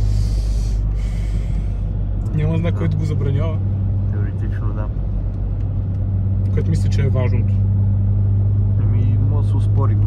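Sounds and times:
breathy hisses: 0.0 - 1.9
car engine droning in cabin: 0.0 - 10.0.

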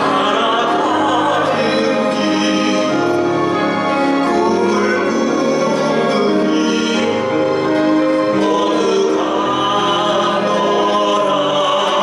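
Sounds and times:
classical guitar: 0.0 - 12.0
two men singing: 0.0 - 12.0.

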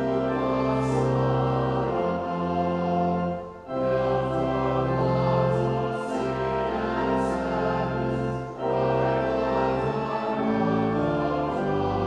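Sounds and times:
choir singing a hymn: 0.0 - 12.0
organ accompaniment: 0.0 - 12.0.

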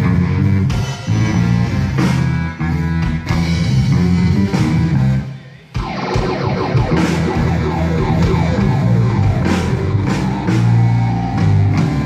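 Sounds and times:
live rock band playing: 0.0 - 12.0.

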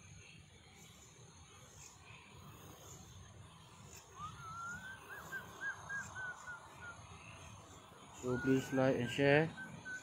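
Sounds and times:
high whistle-like call: 4.2 - 7.0, 8.2 - 10.0.

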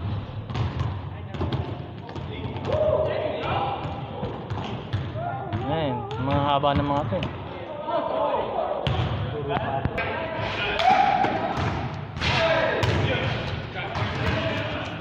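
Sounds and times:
basketball bouncing on gym floor: 0.0 - 7.4, 11.5 - 12.0, 12.8 - 15.0
players calling out: 5.1 - 15.0.

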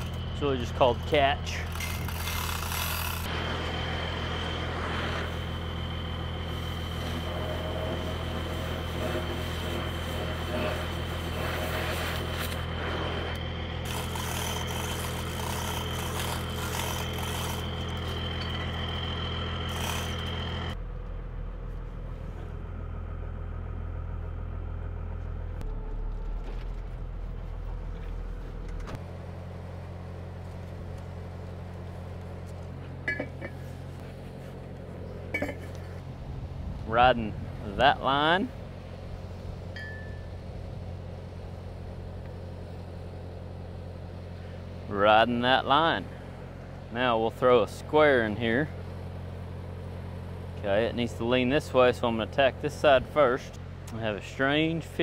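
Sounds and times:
welding machine engine humming: 0.0 - 36.8.

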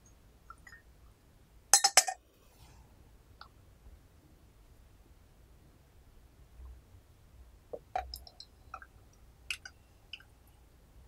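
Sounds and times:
teaware clinking: 1.8 - 2.2.

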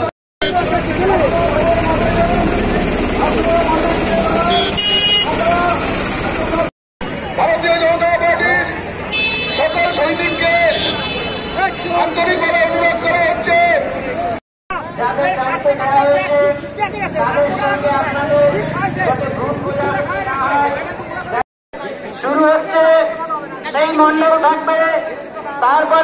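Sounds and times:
vehicle horn toot: 4.3 - 5.7, 9.1 - 12.8.

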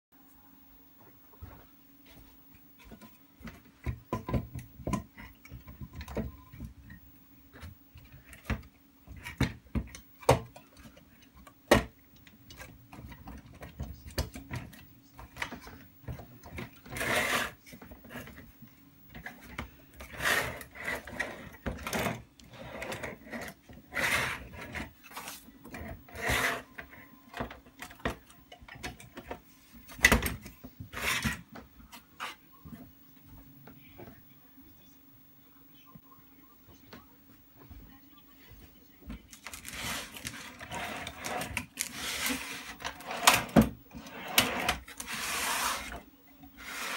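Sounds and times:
steady low hum: 0.2 - 46.9
board rubbing and scraping: 16.8 - 18.3, 20.0 - 25.2, 39.7 - 46.0.

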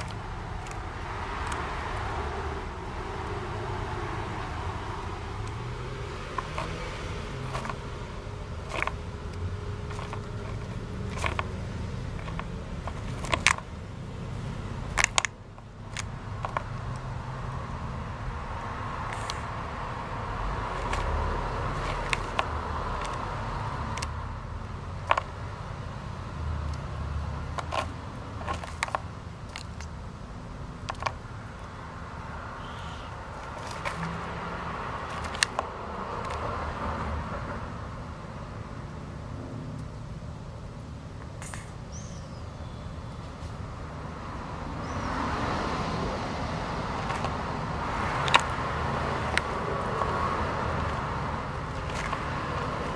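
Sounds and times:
tortoise crunching dry pellets: 0.0 - 17.8, 18.4 - 24.2, 24.8 - 25.4, 27.4 - 30.0, 30.8 - 31.8, 32.6 - 36.8, 41.3 - 41.8, 45.9 - 52.9.

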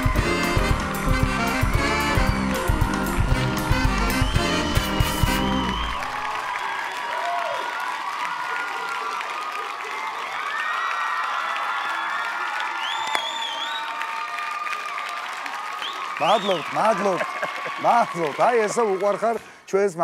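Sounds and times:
band music: 0.0 - 6.2
audience applauding and cheering: 0.0 - 20.0
high whoops from crowd: 5.2 - 19.4.

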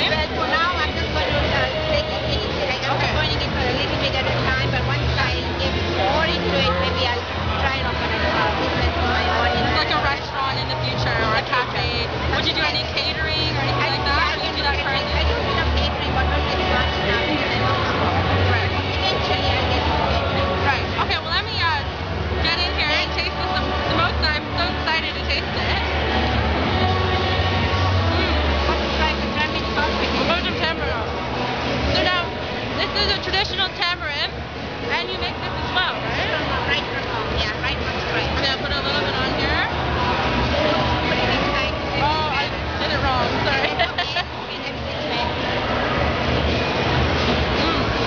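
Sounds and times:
women talking: 0.0 - 17.9, 18.5 - 25.9, 28.2 - 31.0, 31.9 - 39.7, 41.0 - 45.4
chatter of many voices: 0.0 - 48.0.

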